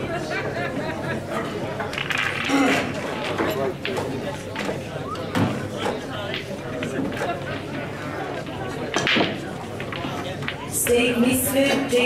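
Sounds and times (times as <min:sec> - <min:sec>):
indistinct chatter in a hall: 0:00.0 - 0:12.0.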